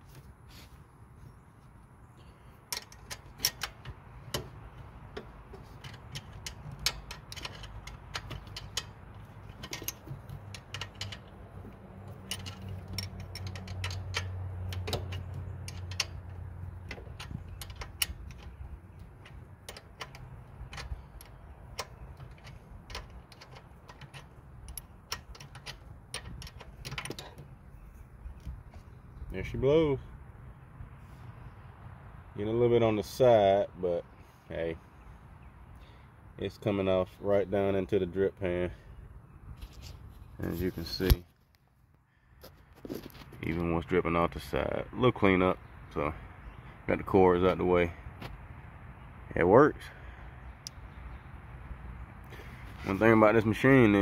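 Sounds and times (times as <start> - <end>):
low steady rumble: 0.0 - 33.2
ratchet wrench clicking: 12.1 - 18.7.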